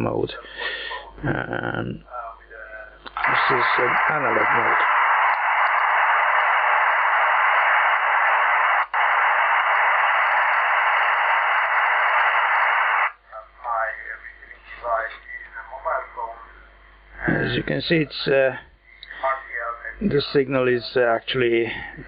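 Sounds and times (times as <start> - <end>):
radio receiver hiss: 3.1 - 16.5
thin voice through receiver: 3.2 - 4.8, 13.4 - 16.4, 19.1 - 20.1.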